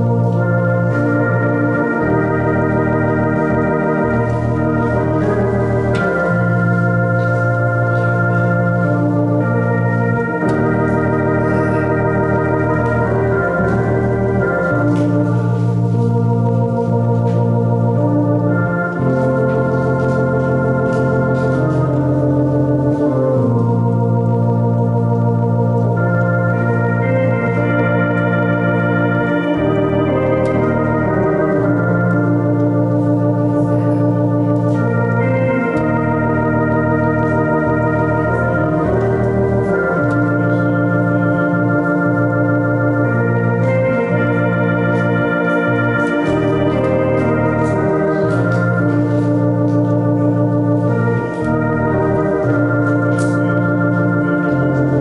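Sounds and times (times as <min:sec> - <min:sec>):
electronic organ chords: 0:00.0 - 0:55.0.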